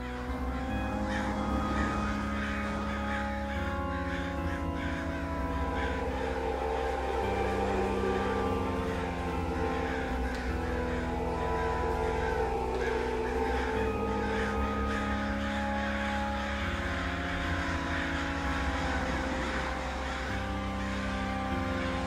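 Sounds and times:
psytrance music: 0.0 - 22.0.

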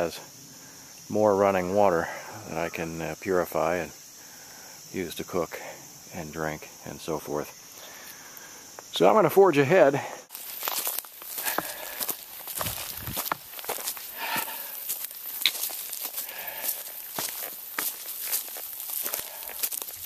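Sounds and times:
footsteps on dry leaves and stones: 10.3 - 20.0.

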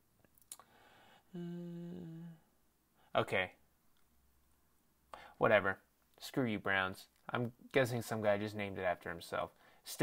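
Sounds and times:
man humming: 1.3 - 2.5.

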